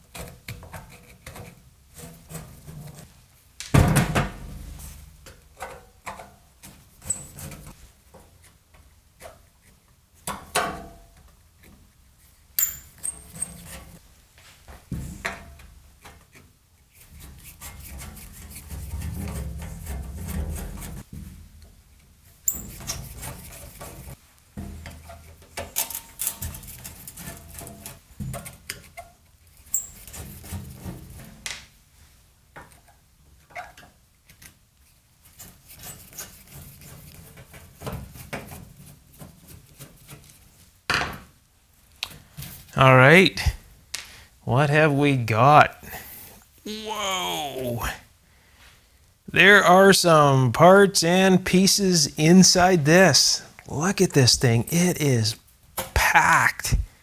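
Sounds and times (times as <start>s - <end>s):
rubbing and scraping on metal: 12.9s - 14.0s, 16.2s - 21.1s, 22.5s - 24.2s, 26.2s - 31.3s, 35.2s - 40.6s.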